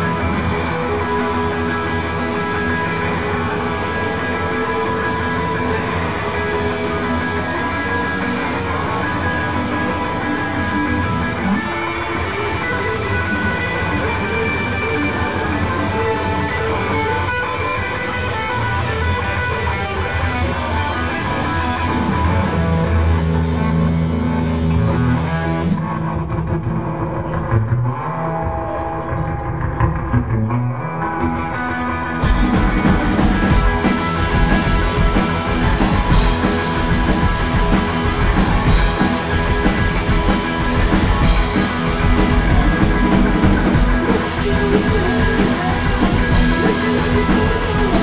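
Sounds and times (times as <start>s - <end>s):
electric guitars ringing chords: 0.0s - 48.0s
rock band playing live: 0.0s - 48.0s.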